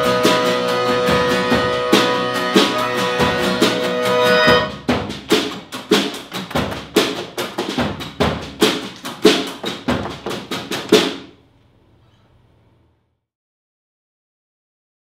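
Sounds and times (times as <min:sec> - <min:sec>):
strummed acoustic guitars: 0:00.0 - 0:11.1
drums playing: 0:00.0 - 0:11.4.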